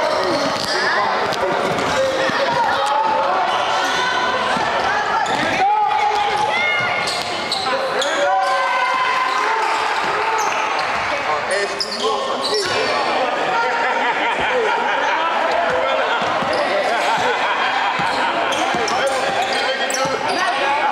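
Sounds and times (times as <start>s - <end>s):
sneakers squeaking: 0.0s - 13.2s, 15.6s - 20.9s.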